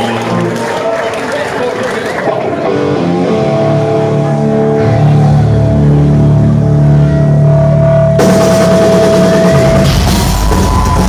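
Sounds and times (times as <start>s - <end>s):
heavy metal band: 2.1s - 11.0s
heavy low drums: 2.7s - 11.0s.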